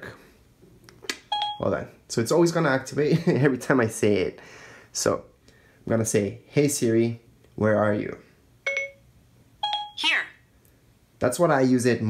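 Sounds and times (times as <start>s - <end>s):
short electronic chime: 9.6s - 10.0s.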